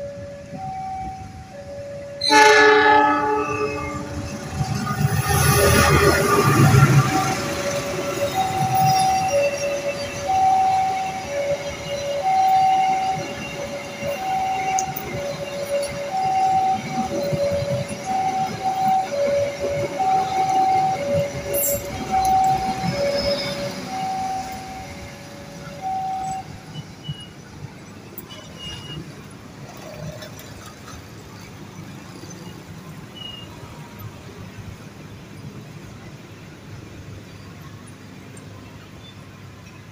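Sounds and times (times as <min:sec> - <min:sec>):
two-tone crossing warning alarm: 0:00.0 - 0:30.4
train rumbling past: 0:00.0 - 0:39.9.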